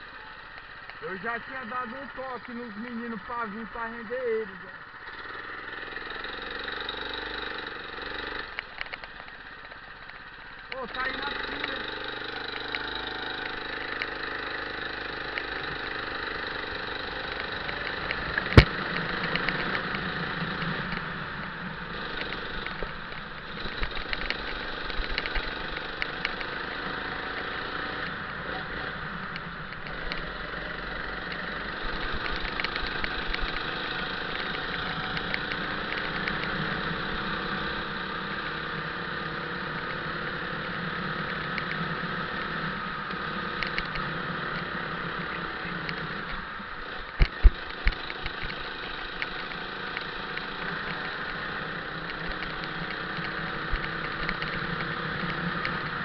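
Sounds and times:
go-kart engine running: 0.0s - 56.0s.

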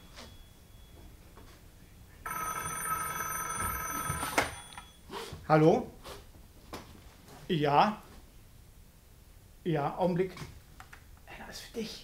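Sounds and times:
telephone bell ringing: 2.2s - 5.0s.

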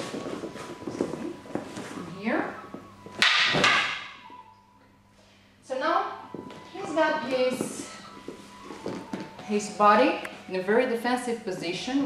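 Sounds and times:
wooden swords clacking: 3.1s - 4.2s.

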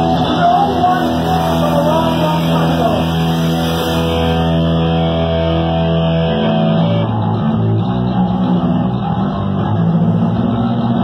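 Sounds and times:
punk band playing loud: 0.0s - 11.0s.

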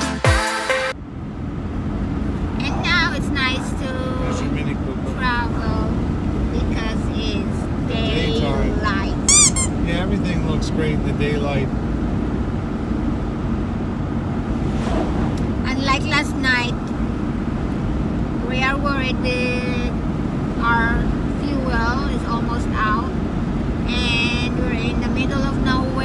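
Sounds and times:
car cabin road and engine noise: 0.9s - 26.0s.

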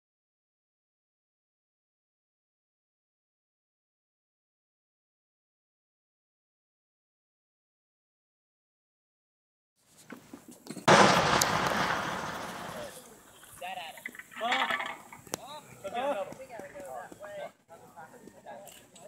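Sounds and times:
cannon shot: 10.9s - 13.1s.

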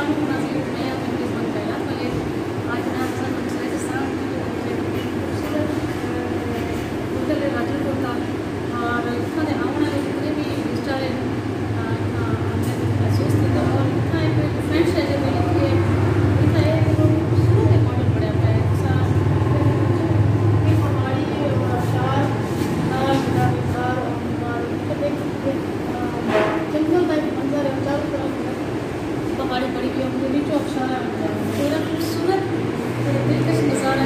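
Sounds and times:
background noise with low hum: 0.0s - 34.0s
woman talking: 0.0s - 34.0s.

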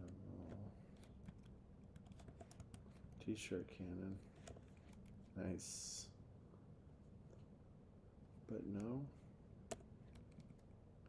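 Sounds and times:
computer keyboard typing: 1.0s - 3.0s.

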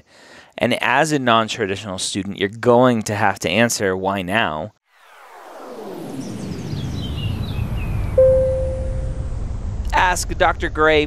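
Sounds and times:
low rumbling swell: 5.2s - 9.8s
high shimmer sliding down: 8.2s - 9.5s
sudden hit with held tone: 8.2s - 9.5s.

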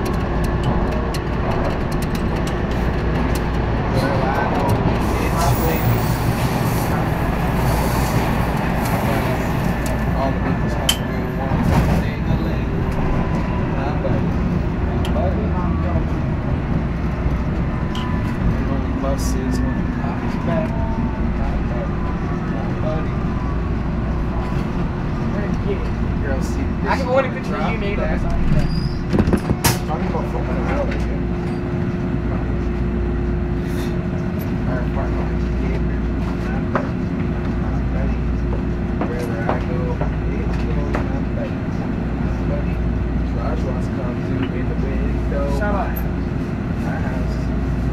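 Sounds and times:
train knocks and clatters: 0.0s - 15.1s, 28.2s - 32.6s, 35.2s - 41.4s
train wheels and motors rumbling: 0.0s - 47.9s.

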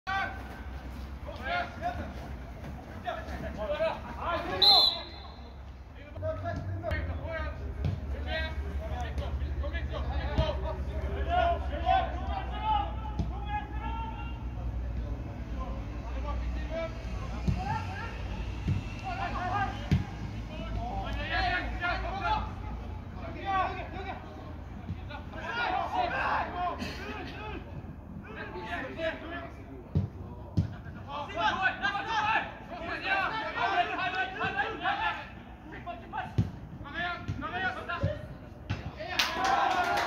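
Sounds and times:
players calling and shouting: 0.1s - 40.0s.

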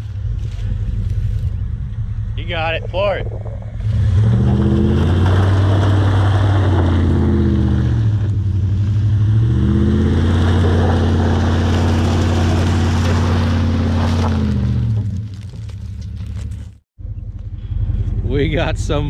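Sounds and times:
truck engine revving: 0.0s - 15.4s
tyres spinning in mud: 3.2s - 8.3s, 8.9s - 16.8s.

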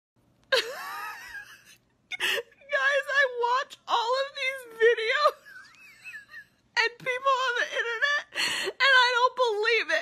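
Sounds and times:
woman laughing and crying: 0.5s - 3.4s, 4.6s - 9.2s.

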